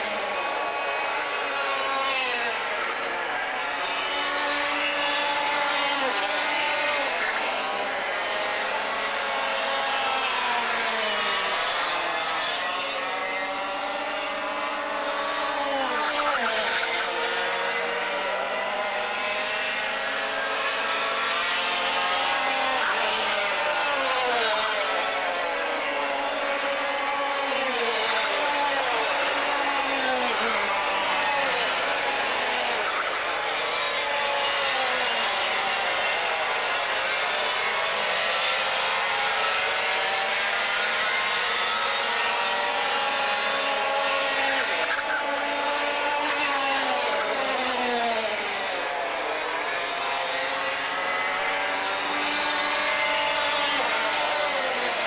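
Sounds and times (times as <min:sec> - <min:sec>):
kart engines racing: 0:00.0 - 0:55.0.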